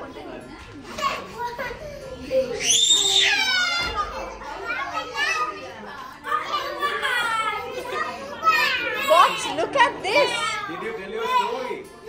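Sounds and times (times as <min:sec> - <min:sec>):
children shouting and squealing: 0:00.9 - 0:11.9.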